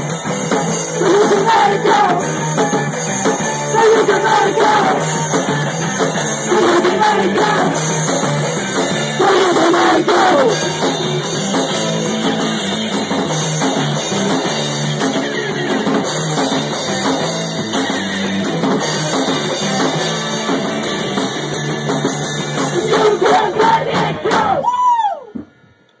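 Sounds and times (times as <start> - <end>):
rock band playing live: 0.0 - 24.7.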